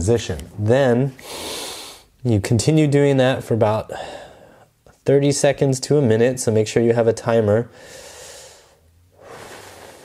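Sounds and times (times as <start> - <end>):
man breathing slowly: 1.2 - 2.1, 3.9 - 4.8, 7.7 - 10.0.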